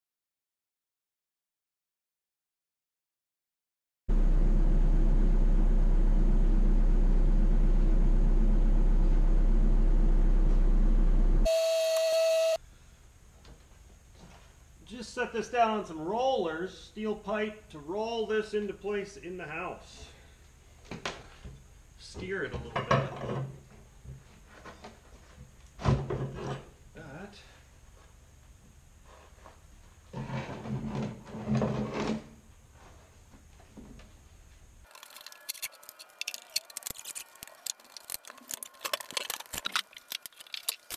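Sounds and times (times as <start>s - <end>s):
loud droning hum: 4.1s - 11.8s
electronic beep: 11.5s - 12.6s.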